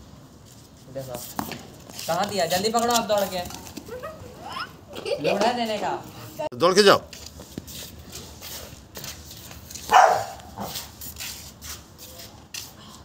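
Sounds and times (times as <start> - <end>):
dog barking: 9.9 - 10.8.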